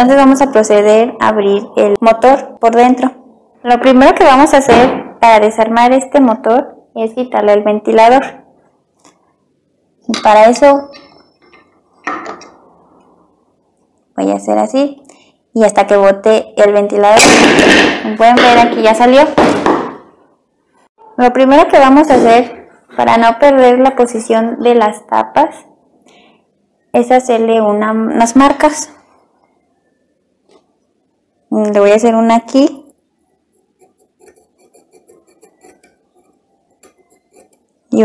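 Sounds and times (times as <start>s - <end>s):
screwdriver scraping metal: 33.8s - 37.7s.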